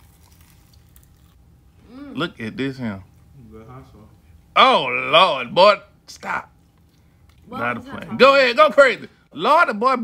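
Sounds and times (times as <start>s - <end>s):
crunching on fried chicken: 0.0s - 1.6s
low steady hum: 0.0s - 10.0s.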